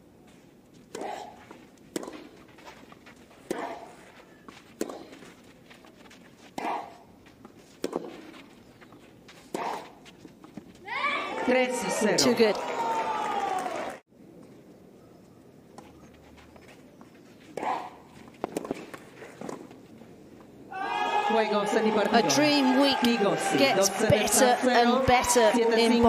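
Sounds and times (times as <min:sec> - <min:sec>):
racket hitting tennis ball: 0:00.8 - 0:05.4, 0:06.4 - 0:08.5, 0:09.2 - 0:10.7, 0:17.5 - 0:19.8
crowd cheering and shouting: 0:10.9 - 0:14.0, 0:20.7 - 0:26.0.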